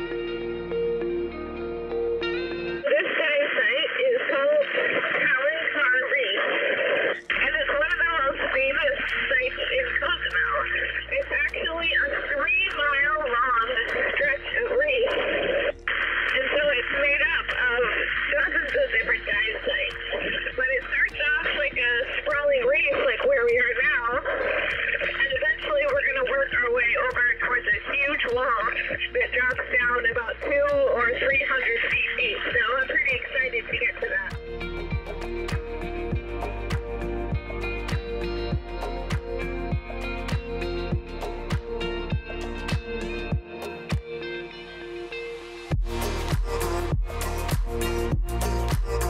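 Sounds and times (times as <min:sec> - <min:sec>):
background music: 0:00.0 - 0:49.0
radio-like diver speech: 0:02.8 - 0:34.4.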